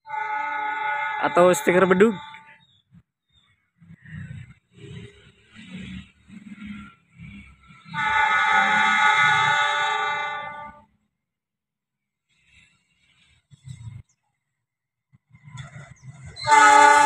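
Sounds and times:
locomotive air horn blast: 0.0s - 2.5s, 7.9s - 10.9s, 16.4s - 17.0s.

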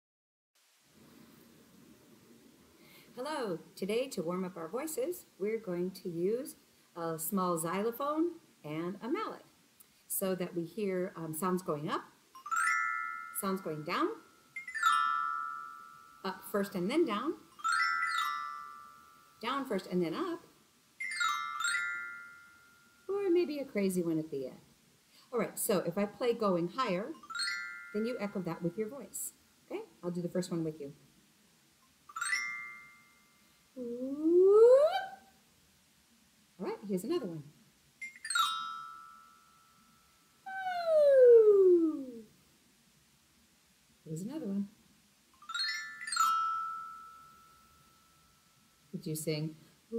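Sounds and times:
xylophone descending run: 12.4s - 16.5s, 17.5s - 19.7s, 21.0s - 23.1s, 27.2s - 28.8s, 32.1s - 33.3s, 38.0s - 40.8s, 45.4s - 48.5s
voice gliding down in pitch: 33.8s - 35.3s, 40.5s - 42.3s.

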